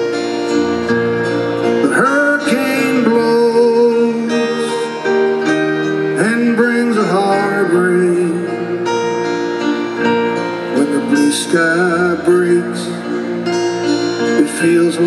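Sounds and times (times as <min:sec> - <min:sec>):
band playing slow ballad: 0:00.0 - 0:15.0
strummed acoustic guitar: 0:00.0 - 0:15.0
man singing: 0:01.8 - 0:09.1, 0:10.6 - 0:15.0.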